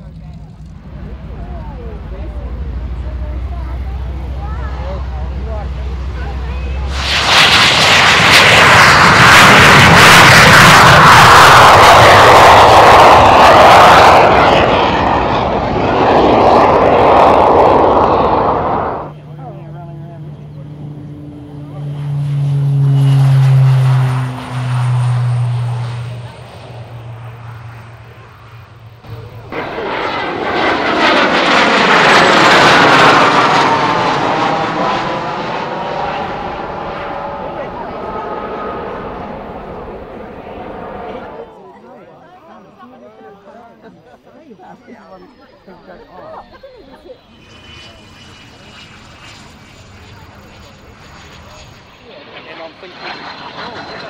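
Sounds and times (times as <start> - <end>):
turboprop propeller drone: 0.0 - 41.6, 46.4 - 54.0
turbojet roar at takeoff power: 0.0 - 41.7, 45.2 - 54.0
jet passing overhead: 0.0 - 42.9, 44.9 - 54.0.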